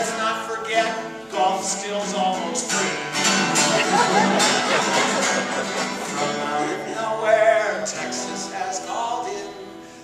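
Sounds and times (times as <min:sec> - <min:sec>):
acoustic guitar: 0:00.0 - 0:10.0
man singing: 0:00.0 - 0:10.0.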